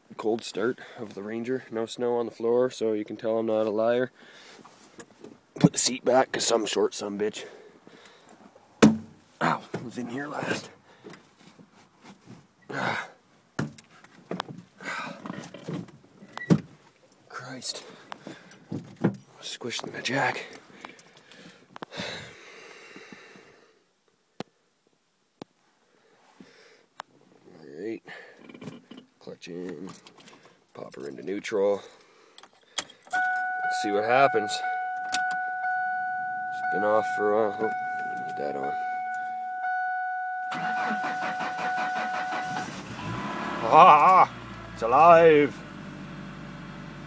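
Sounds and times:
steady high tone: 33.2s - 42.6s
engine starting: 40.5s - 43.8s
drawn-out groan: 40.5s - 47.0s.

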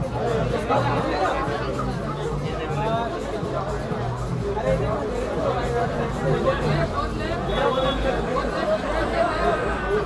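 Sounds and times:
background music with bass: 0.0s - 10.0s
chatter of people: 0.0s - 10.0s.

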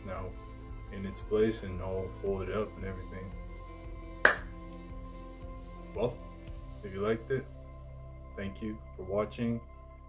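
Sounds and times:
soft background music: 0.0s - 10.0s
hands smacking: 4.2s - 4.6s.

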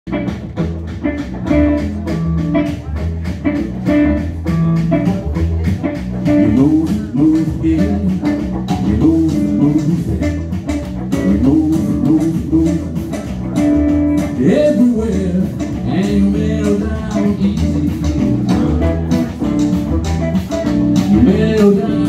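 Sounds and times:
blues-rock band playing: 0.1s - 22.0s
guitar lead with pitch bends: 0.1s - 22.0s.

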